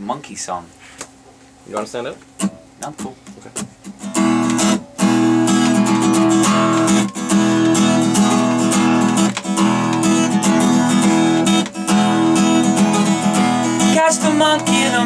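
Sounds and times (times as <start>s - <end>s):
acoustic guitar strumming: 2.3s - 15.0s.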